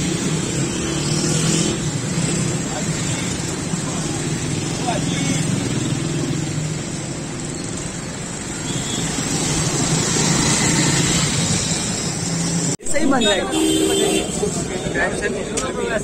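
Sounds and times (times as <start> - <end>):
road traffic passing: 0.0 - 16.0.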